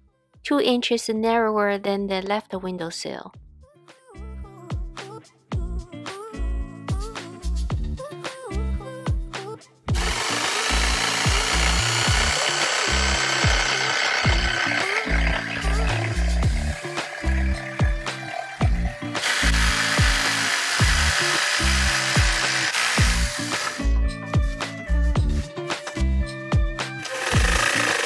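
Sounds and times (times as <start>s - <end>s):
jigsaw cutting wood: 9.9s - 23.8s, 27.0s - 28.0s
music with bass beat: 14.3s - 20.2s, 23.0s - 27.8s.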